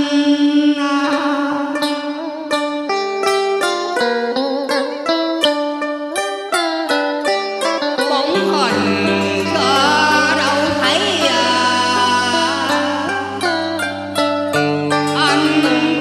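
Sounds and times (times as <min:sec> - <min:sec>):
plucked-string melody: 0:00.0 - 0:16.0.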